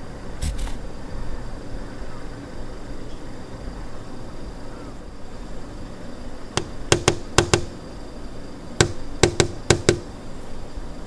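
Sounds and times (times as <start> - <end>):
knocks on a door: 6.6 - 7.7, 8.8 - 10.1.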